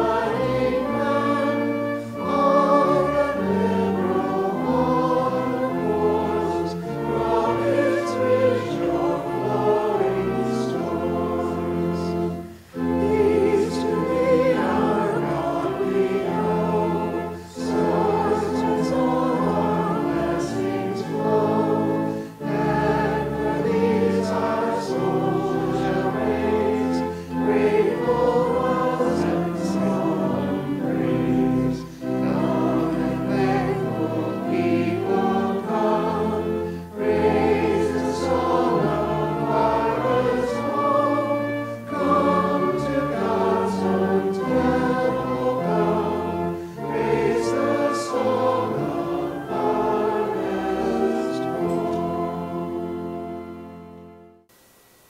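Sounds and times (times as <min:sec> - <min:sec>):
group singing sacred song: 0:00.0 - 0:54.2
pipe organ: 0:00.0 - 0:55.0.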